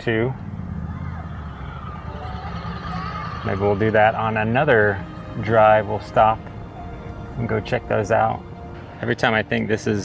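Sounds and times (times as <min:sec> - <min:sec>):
car engine rumble: 0:00.0 - 0:10.0.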